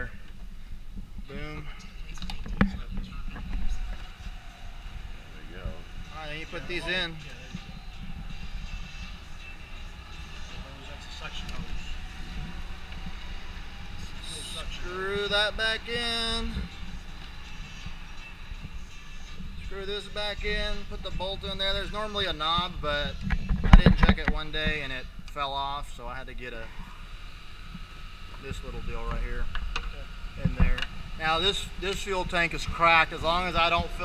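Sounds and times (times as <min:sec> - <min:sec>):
steady low rumble: 0:00.0 - 0:34.0
man talking: 0:05.3 - 0:07.6, 0:14.1 - 0:16.7, 0:19.6 - 0:26.8, 0:30.4 - 0:34.0.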